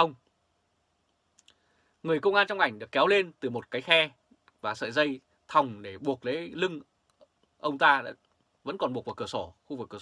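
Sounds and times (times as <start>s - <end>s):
man speaking: 0.0s - 0.2s, 2.0s - 6.9s, 7.6s - 10.0s.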